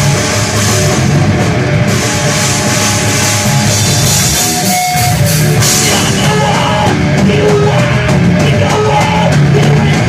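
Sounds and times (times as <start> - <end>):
drum kit: 0.0 - 10.0
electric guitars: 0.0 - 10.0
live rock band playing: 0.0 - 10.0.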